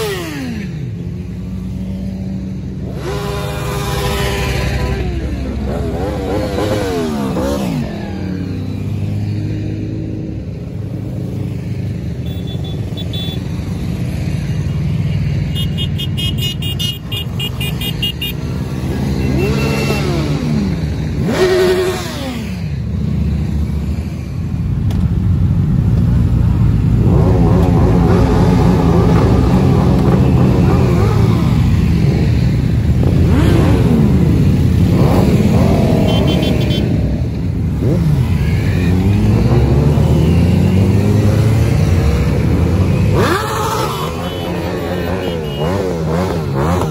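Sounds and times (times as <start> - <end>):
motorcycles riding past: 0.0 - 46.9.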